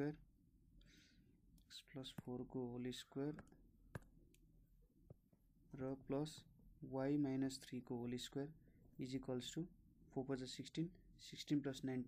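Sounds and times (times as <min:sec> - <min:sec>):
stylus tapping on tablet screen: 0:03.3 - 0:04.4.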